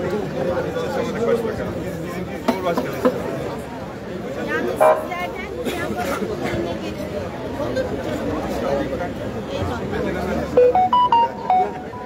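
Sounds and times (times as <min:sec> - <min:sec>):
crowd chatter: 0:00.0 - 0:12.0
short tune of quick notes: 0:10.6 - 0:12.0.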